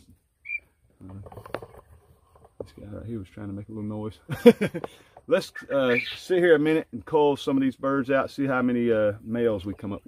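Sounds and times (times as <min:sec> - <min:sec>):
quail chirp: 0:00.4 - 0:00.8, 0:05.5 - 0:06.3.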